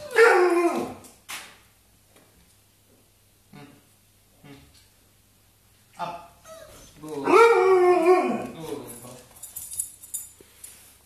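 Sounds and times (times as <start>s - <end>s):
dog howling: 0.0s - 1.0s, 6.5s - 8.7s
dog whining: 0.0s - 1.0s, 6.0s - 8.8s.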